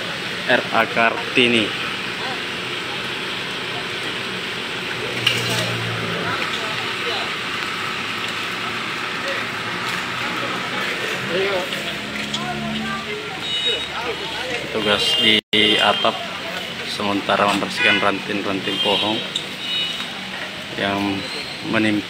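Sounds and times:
diesel engine running: 0.0s - 21.4s.

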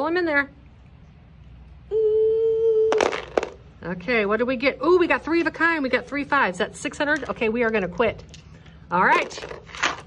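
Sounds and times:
voice holding a steady note: 1.9s - 3.0s
dice clattering into a tray: 3.0s - 3.6s.

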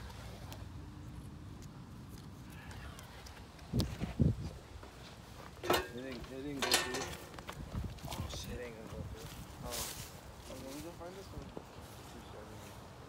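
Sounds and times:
knocks and rustles: 5.4s - 7.8s.

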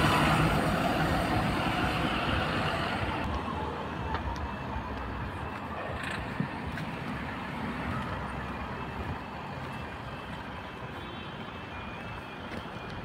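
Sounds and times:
road and wind noise: 0.0s - 13.0s.

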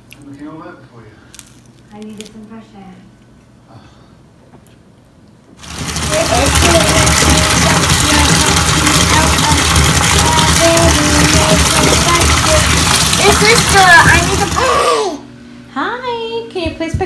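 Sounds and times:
water pouring into bathtub: 5.6s - 15.1s.

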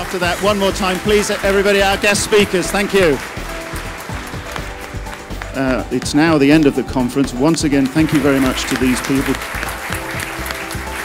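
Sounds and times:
audience applauding: 0.0s - 11.0s
background music: 0.0s - 11.0s.

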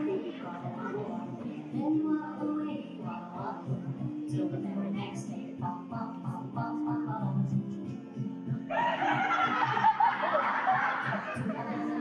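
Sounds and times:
audience laughing: 8.7s - 12.0s.

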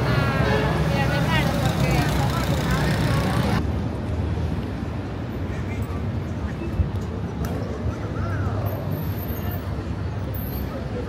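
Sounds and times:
passers-by talking: 0.0s - 3.7s, 5.3s - 11.0s
dull street background: 0.0s - 11.0s
traffic rumble: 0.0s - 11.0s.

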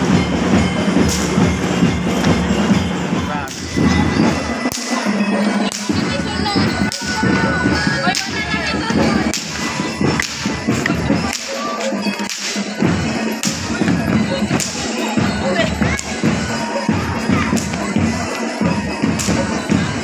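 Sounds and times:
parade and crowd noise: 0.0s - 20.0s.

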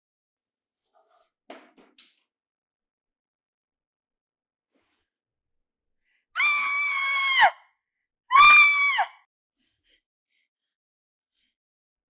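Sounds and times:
woman screaming: 6.4s - 7.6s, 8.3s - 9.2s.

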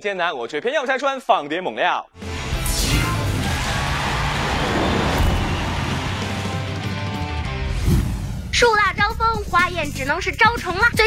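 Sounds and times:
rushing whoosh: 3.0s - 8.5s.

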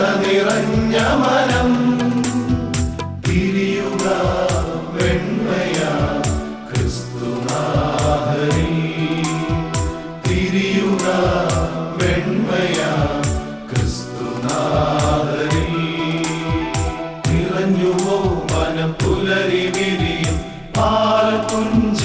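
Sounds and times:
male choir singing: 0.0s - 22.0s
orchestral backing music: 0.0s - 22.0s
steady drum beat: 0.0s - 22.0s.

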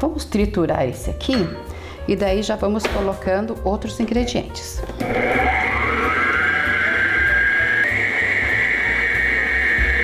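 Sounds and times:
stand mixer motor whine: 5.0s - 10.0s.

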